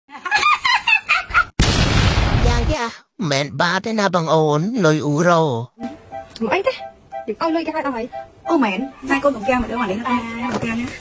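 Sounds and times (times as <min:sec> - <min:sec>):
loud noisy blast: 0:01.6 - 0:02.7.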